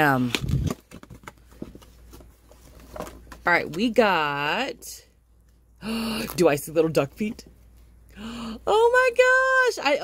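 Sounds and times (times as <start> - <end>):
paperboard box rustling and clicking: 0.2 - 3.8.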